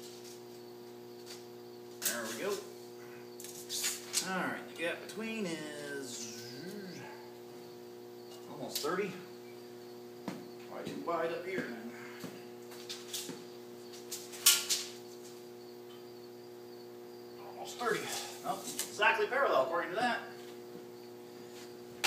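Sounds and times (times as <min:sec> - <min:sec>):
electrical hum: 0:00.0 - 0:22.0.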